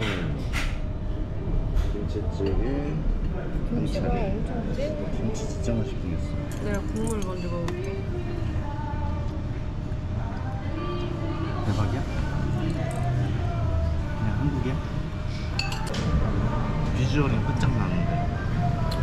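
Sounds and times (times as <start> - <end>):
spoons clinking on metal bowl: 15.6 - 15.9.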